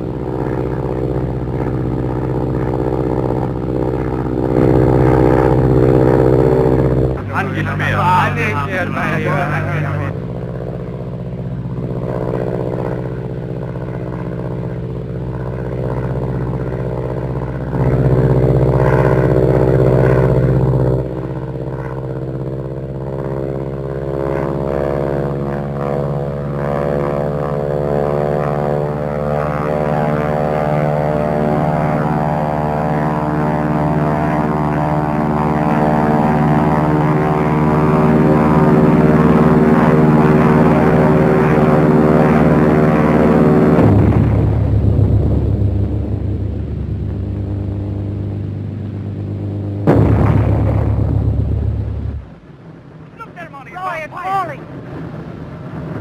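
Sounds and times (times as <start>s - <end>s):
propeller aircraft engines droning: 0.0s - 56.0s.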